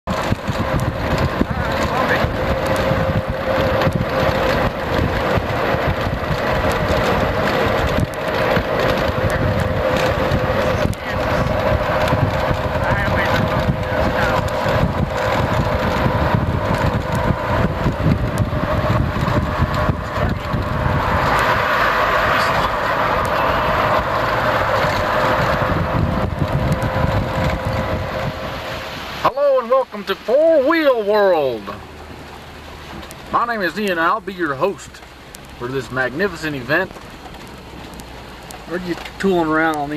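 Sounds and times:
wind on microphone: 0.0s - 29.3s
vehicle engine and road noise: 0.0s - 39.9s.

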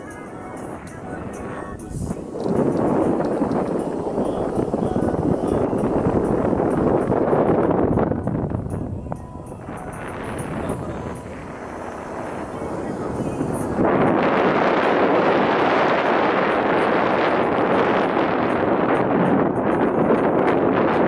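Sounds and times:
wind and road noise from car: 0.0s - 21.0s.

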